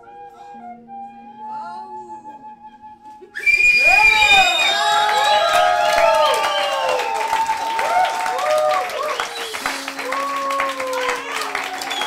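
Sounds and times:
high whistle: 0:02.6 - 0:10.2, 0:11.8 - 0:12.0
audience cheering and shouting: 0:03.7 - 0:12.0.

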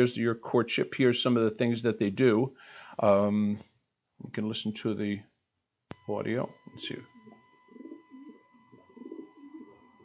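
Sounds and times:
pigeon cooing through speakers: 0:07.2 - 0:10.0.

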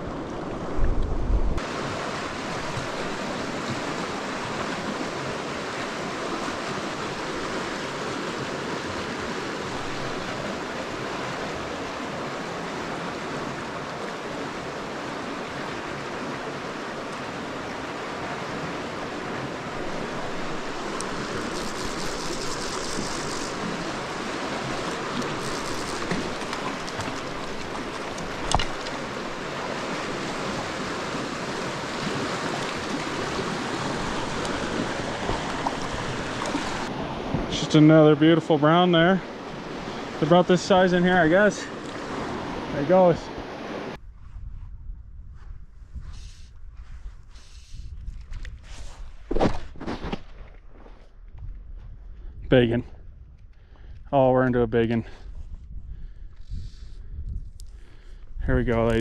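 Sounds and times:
river rushing over boulders: 0:01.6 - 0:38.0.

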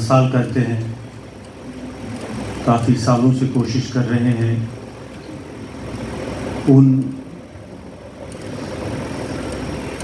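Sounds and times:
engine rumble: 0:00.0 - 0:10.0.

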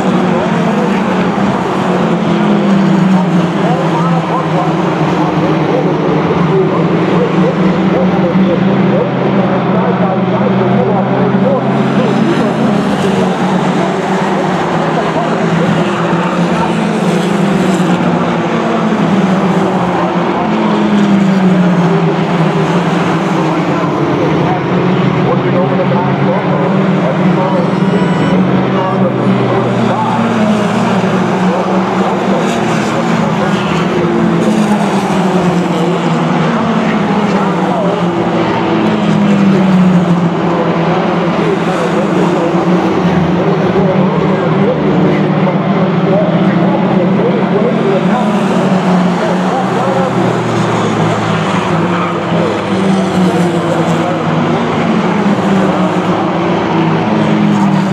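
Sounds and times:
race car engines: 0:00.0 - 0:57.9.

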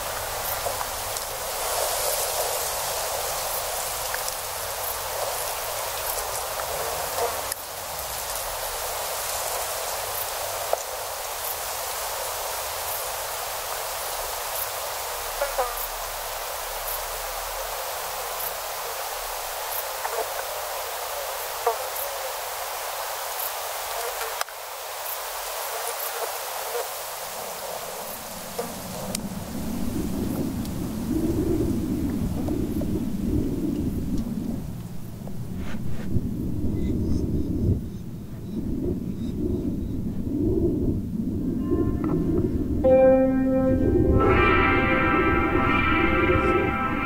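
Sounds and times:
steady rushing hiss: 0:00.0 - 0:36.7.

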